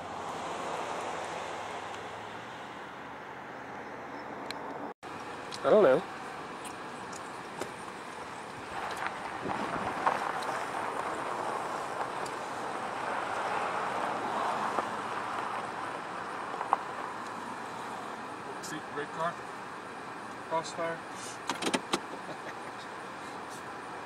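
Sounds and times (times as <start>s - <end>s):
car passing: 0.0s - 4.9s, 6.8s - 19.4s.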